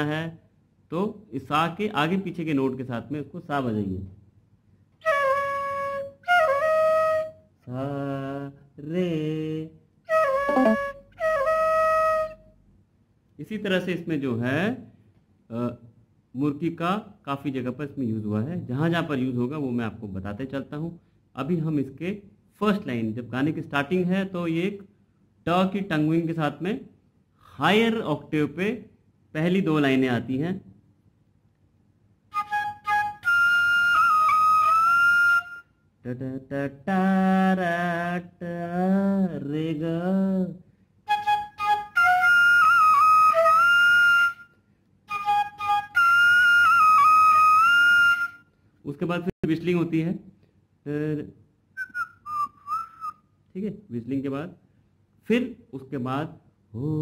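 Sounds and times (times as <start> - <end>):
bamboo flute notes: 5.0 - 7.4, 10.1 - 12.4, 32.3 - 35.8, 41.1 - 48.5, 51.8 - 53.2.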